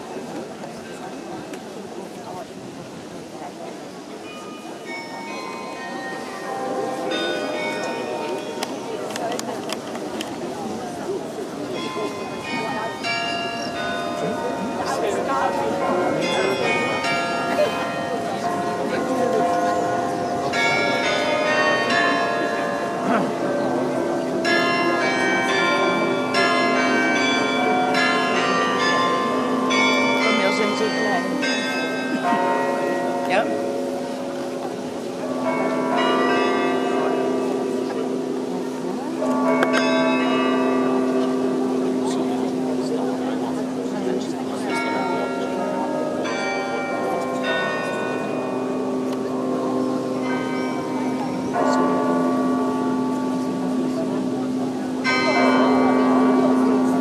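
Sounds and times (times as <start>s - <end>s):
carillon bells ringing chords: 11.7s - 57.0s.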